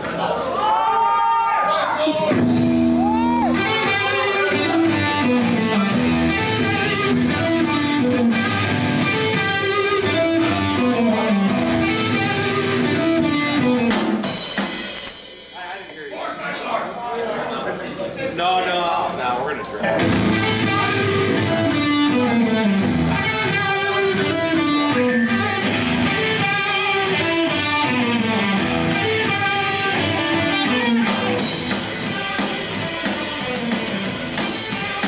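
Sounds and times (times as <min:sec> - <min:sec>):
stage noise: 0:00.0 - 0:35.0
electric guitars: 0:02.0 - 0:15.5, 0:19.0 - 0:35.0
drum kit: 0:02.3 - 0:16.8, 0:19.8 - 0:35.0
cymbal crash: 0:14.3 - 0:16.2.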